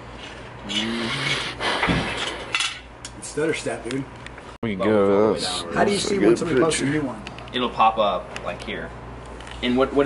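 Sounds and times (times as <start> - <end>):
man's wordless vocal noise: 0.6 - 1.6.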